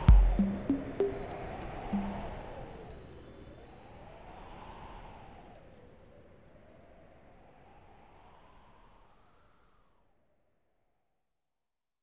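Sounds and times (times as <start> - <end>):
wind chimes shimmering: 0.0 - 5.6.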